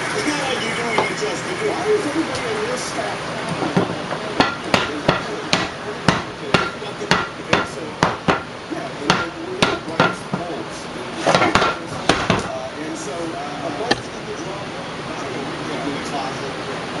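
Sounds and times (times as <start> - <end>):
sharp knocks: 3.6 - 8.5, 11.3 - 12.5.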